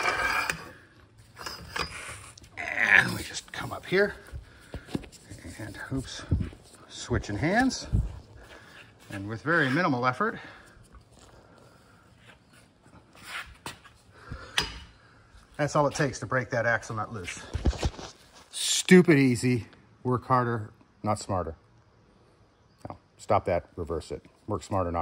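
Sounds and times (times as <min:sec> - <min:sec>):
metal-on-metal scrape: 0:00.0 - 0:02.4.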